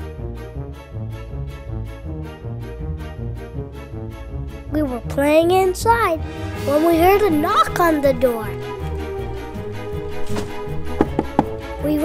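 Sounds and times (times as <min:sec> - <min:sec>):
background music: 0:00.0 - 0:12.0
knocks on a door: 0:10.4 - 0:11.7.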